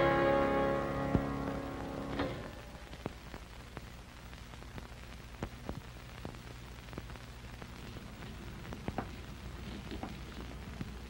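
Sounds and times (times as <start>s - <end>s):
harpsichord chord: 0.0s - 2.5s
low steady hum: 0.0s - 11.0s.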